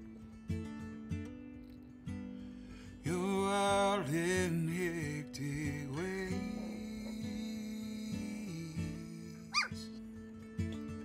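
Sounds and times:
song with guitar: 0.0s - 11.0s
puppy yip: 9.5s - 9.8s.

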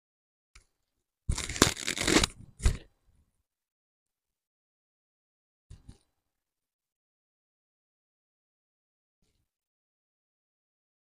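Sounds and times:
hair rustling and crunching: 1.3s - 2.3s.

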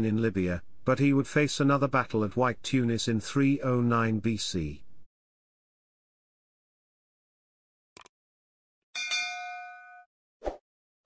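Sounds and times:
bright metallic ding: 9.0s - 10.1s.

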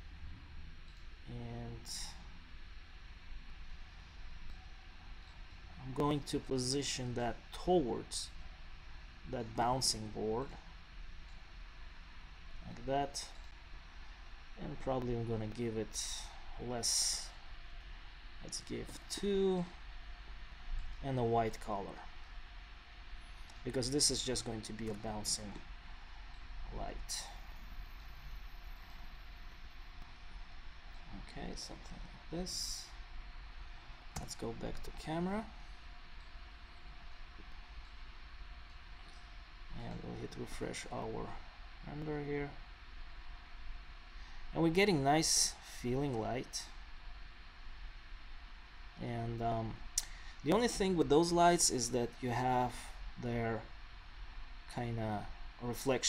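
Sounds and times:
low hiss and hum: 0.0s - 56.0s
faint click: 50.0s - 50.2s.

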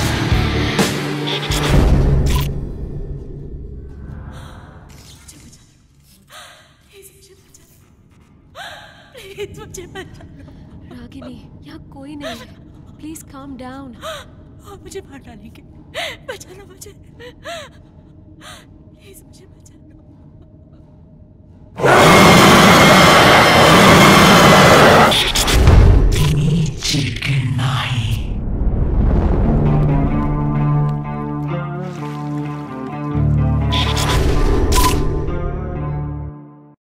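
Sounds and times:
woman gasping: 8.6s - 9.2s
harsh noisy blast: 21.8s - 26.2s
low dark rumble: 25.1s - 31.5s.

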